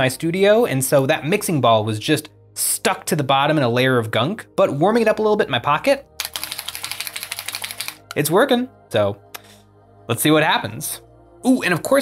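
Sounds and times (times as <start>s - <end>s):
ball rattling inside shaken bottle: 6.2s - 8.2s.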